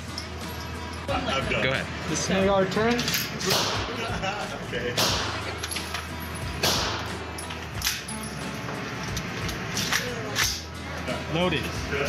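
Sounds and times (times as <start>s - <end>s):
gunshots echoing indoors: 3.5s - 4.1s, 5.0s - 5.6s, 6.6s - 7.2s.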